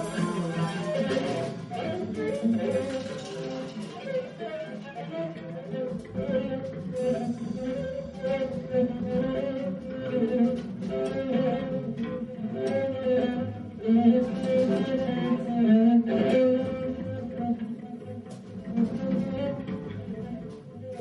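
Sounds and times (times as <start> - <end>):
piano: 0.0 - 21.0
viola bowed hard: 0.0 - 21.0.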